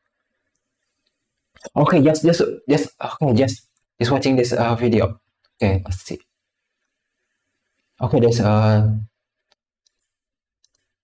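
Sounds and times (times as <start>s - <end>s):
computer mouse clicks: 0.4s - 1.7s, 9.4s - 11.0s.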